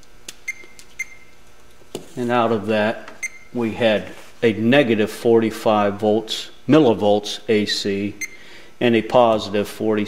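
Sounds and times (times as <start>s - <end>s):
multimeter high beeps: 0.4s - 1.4s, 3.2s - 3.6s, 8.1s - 8.4s.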